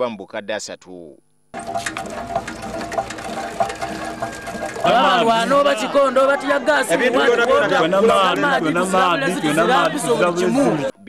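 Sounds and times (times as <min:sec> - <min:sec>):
hand pump knocks: 0:01.6 - 0:05.8.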